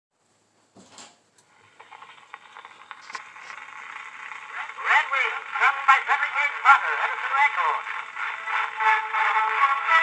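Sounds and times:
phonograph surface hiss and crackle: 0.2 - 10.0.

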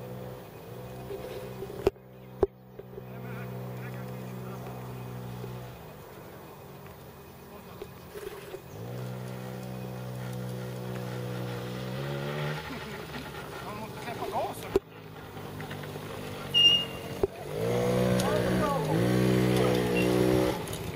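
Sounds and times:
quad bike engine running: 0.0 - 20.9.

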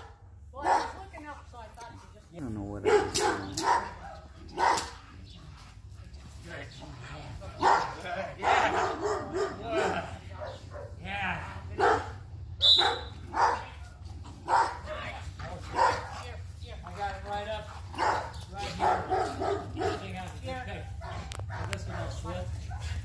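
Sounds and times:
dog barking aggressively: 0.0 - 1.1, 2.7 - 5.6, 6.8 - 16.6, 17.2 - 23.0.

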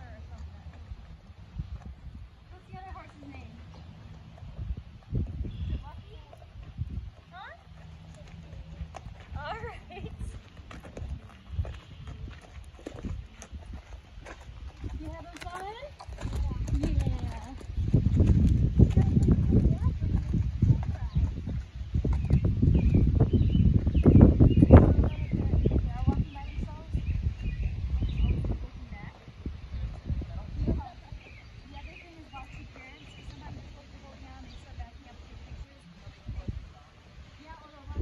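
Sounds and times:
hoof thuds on sandy dirt: 0.0 - 38.0
low buffeting rumble: 0.0 - 38.0.

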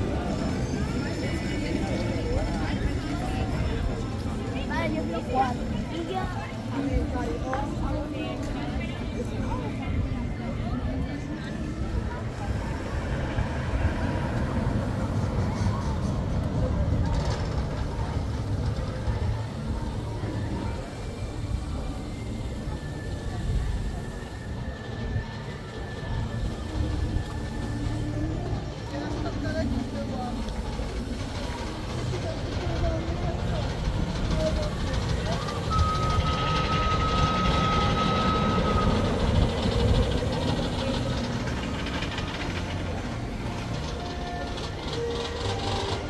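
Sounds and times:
crowd chatter: 0.0 - 46.0
roller coaster rumbling on track: 0.0 - 46.0
held high tone: 35.4 - 39.5.

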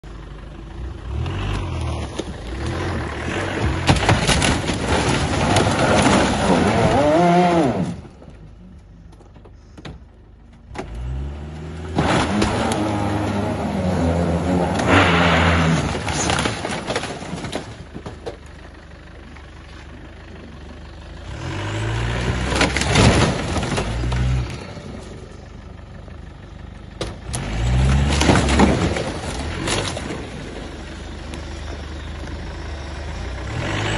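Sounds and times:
engine droning at low revs: 0.0 - 33.9
car engine revving under load: 0.6 - 9.1, 10.6 - 17.4.

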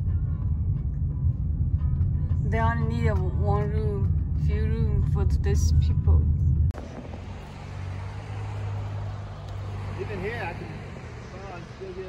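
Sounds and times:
low engine hum: 0.0 - 12.0
outdoor background noise: 0.0 - 12.0.

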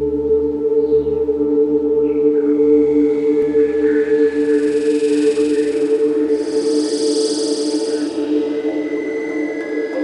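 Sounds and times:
low synthesizer drone: 0.0 - 10.0
high shimmering swell: 2.7 - 10.0.

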